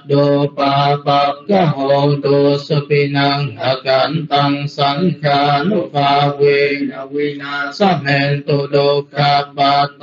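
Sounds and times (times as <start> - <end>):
man chanting in monotone: 0.0 - 10.0.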